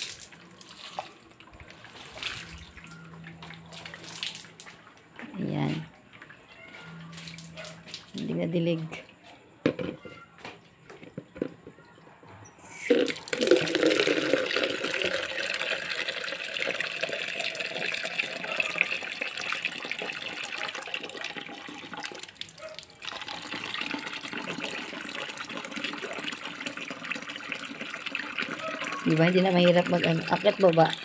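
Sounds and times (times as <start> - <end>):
water splashing onto plants: 0.0 - 5.8, 7.1 - 8.6.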